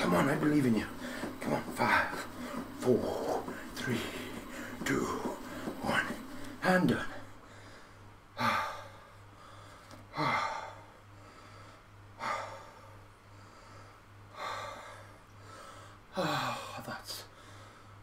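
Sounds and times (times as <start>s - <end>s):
man breathing hard: 7.3s - 18.0s.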